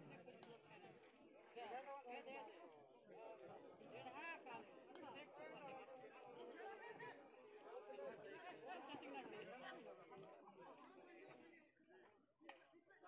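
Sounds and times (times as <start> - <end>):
faint chatter of voices: 0.0 - 13.0.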